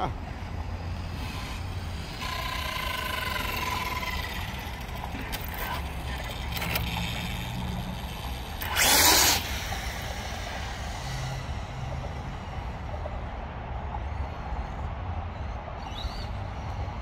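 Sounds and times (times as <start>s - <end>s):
electric motor whining: 0.9s - 12.0s.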